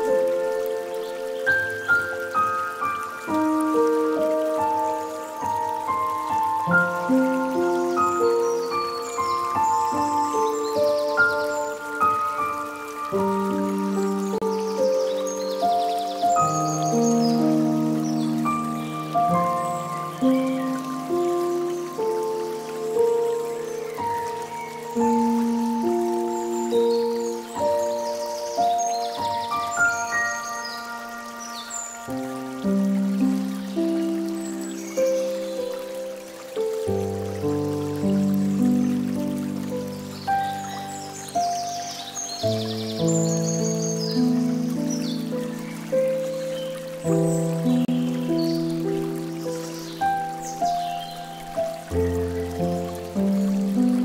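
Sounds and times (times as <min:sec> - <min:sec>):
calm instrumental music: 0:00.0 - 0:54.0
water trickling from fountain: 0:00.0 - 0:54.0.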